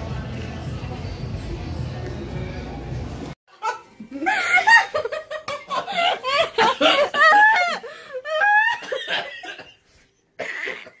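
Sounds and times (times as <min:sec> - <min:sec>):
high-pitched squealing laughter: 0:03.5 - 0:09.0.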